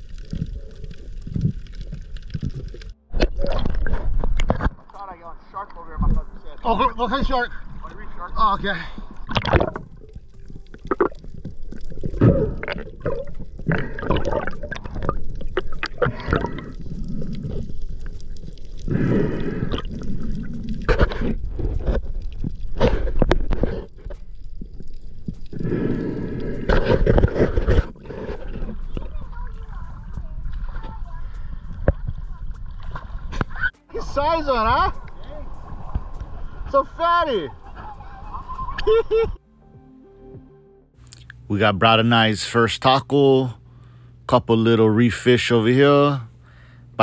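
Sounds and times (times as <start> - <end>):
seawater sloshing and gurgling: 5.8 - 38.9.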